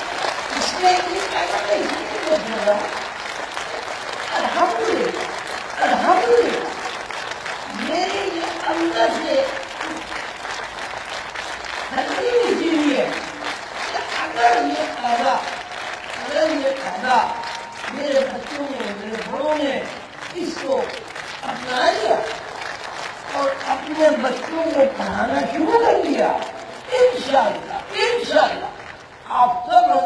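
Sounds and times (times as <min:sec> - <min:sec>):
audience applauding: 0:00.0 - 0:30.0
person speaking: 0:00.5 - 0:03.0, 0:04.2 - 0:06.9, 0:07.6 - 0:10.2, 0:11.9 - 0:15.6, 0:23.3 - 0:30.0.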